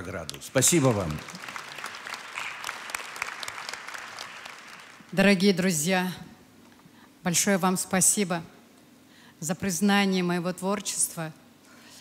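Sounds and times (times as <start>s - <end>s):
audience applauding: 0.0s - 5.3s.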